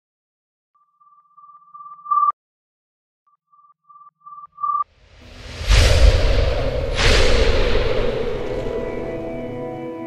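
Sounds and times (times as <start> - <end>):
electronic beeps: 0.8 - 2.4, 3.3 - 4.9.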